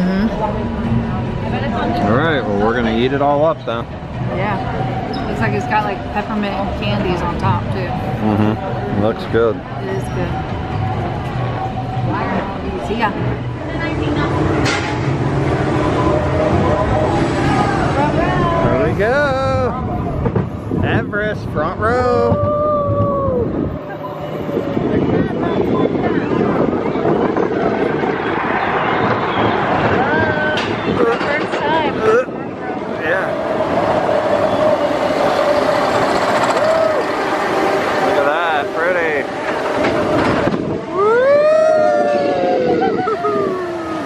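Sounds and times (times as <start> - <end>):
roller coaster rumbling on track: 0.0 - 44.0
rushing noise of moving ride: 0.0 - 44.0
wind on microphone: 9.8 - 44.0
roller coaster rider screaming: 22.2 - 24.0, 33.2 - 44.0.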